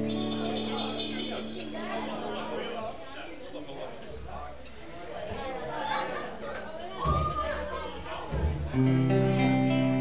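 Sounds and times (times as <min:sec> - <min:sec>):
cymbal hit: 0:00.0 - 0:02.7
electric guitar chord: 0:00.0 - 0:02.9
upright bass: 0:00.0 - 0:03.0, 0:08.4 - 0:10.0
room chatter: 0:00.0 - 0:10.0.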